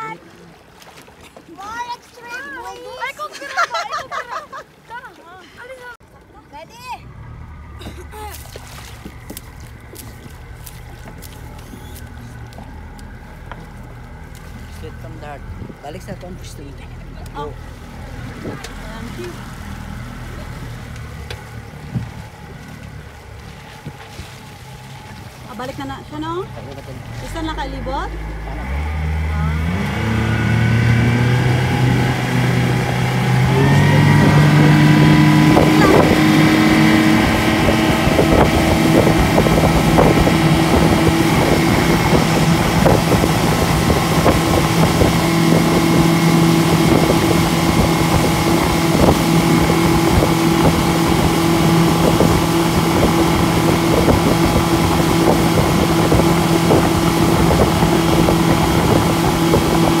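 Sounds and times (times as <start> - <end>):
outboard motor running: 0.0 - 60.0
wind and water rushing: 0.0 - 60.0.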